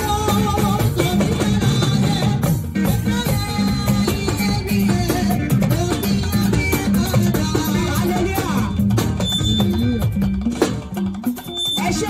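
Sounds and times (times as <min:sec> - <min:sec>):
live gospel band playing: 0:00.0 - 0:12.0.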